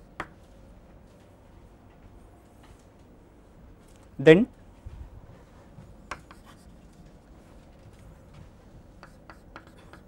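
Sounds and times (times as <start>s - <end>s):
chalk scraping on blackboard: 6.1s - 6.7s, 9.0s - 10.0s
sharp chalk clicks: 9.0s - 10.0s.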